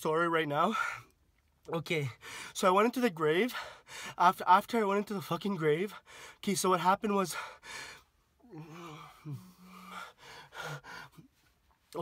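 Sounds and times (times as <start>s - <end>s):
man gasping breaths: 2.2s - 2.6s, 3.5s - 4.2s, 6.0s - 6.4s, 7.3s - 11.6s
man humming: 8.5s - 10.0s.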